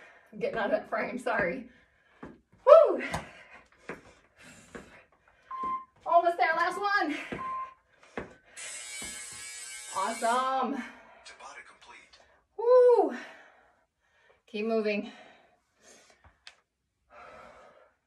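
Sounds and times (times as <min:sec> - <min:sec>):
feet thudding on rubber floor: 0:00.4 - 0:08.4
short beeps: 0:05.5 - 0:06.0, 0:07.4 - 0:07.8.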